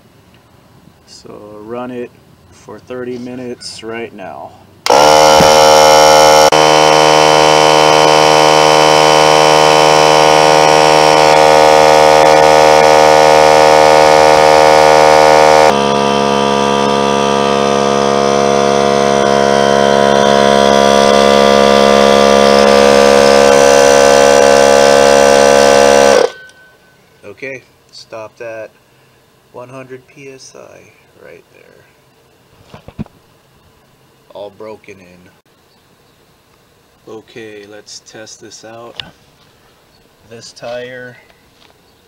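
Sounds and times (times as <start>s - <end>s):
air compressor running: 4.8s - 26.6s.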